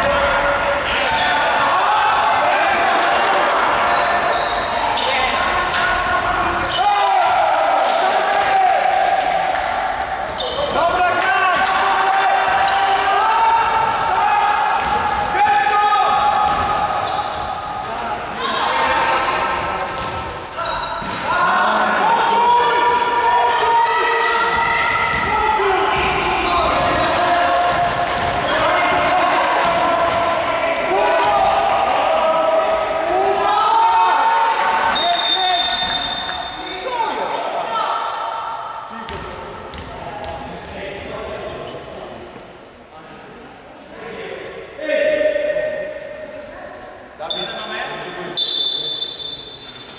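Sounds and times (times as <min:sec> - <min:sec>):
voices calling and shouting: 0:00.0 - 0:42.1
shoes squeaking on floor: 0:04.3 - 0:10.8, 0:16.1 - 0:22.1, 0:23.4 - 0:28.8, 0:32.0 - 0:33.7, 0:34.8 - 0:37.2, 0:46.0 - 0:47.7, 0:48.3 - 0:49.9
basketball bouncing on court: 0:16.0 - 0:17.6, 0:24.5 - 0:30.3, 0:39.1 - 0:40.4.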